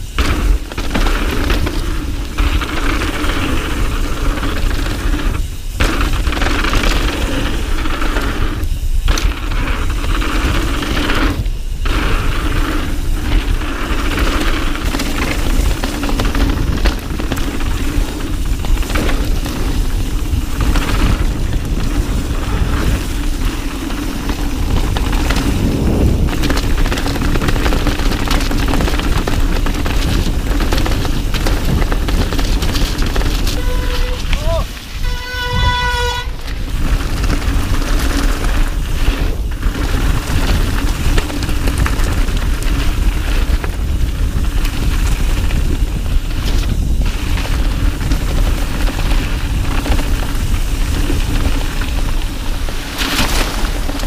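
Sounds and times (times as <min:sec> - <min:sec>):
bike rattling over bumps: 0:00.0 - 0:54.0
bike tyres skidding over dirt: 0:00.0 - 0:54.0.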